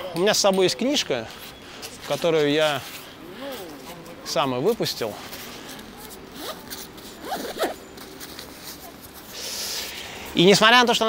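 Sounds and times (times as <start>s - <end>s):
bag rustling: 1.3s - 10.3s
bag zipper pulled open: 5.7s - 7.8s.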